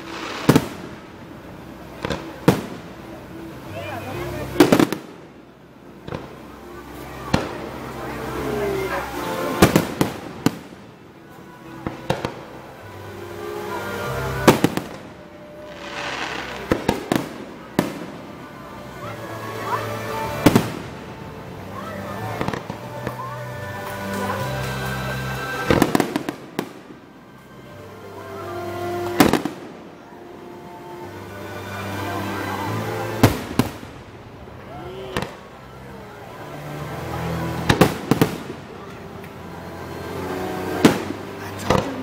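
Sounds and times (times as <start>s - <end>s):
fireworks bursting with bangs: 0.0s - 3.4s, 4.5s - 5.4s, 6.0s - 11.0s, 11.8s - 12.9s, 13.6s - 18.5s, 20.0s - 27.1s, 28.8s - 29.9s, 31.9s - 35.8s, 37.6s - 39.3s, 40.1s - 42.0s
music: 0.0s - 42.0s.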